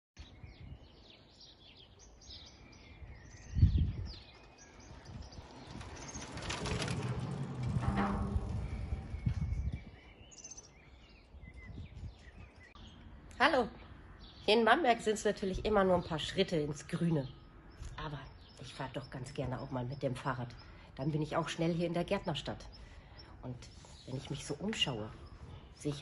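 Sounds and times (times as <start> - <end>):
small birds chirping: 0.2 - 6.8, 9.0 - 26.0
car passing: 5.4 - 9.4
low thump: 6.8 - 9.9.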